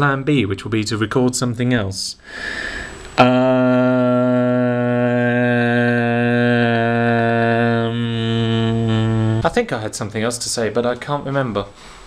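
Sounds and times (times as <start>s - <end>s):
man droning a low note: 3.2s - 9.6s.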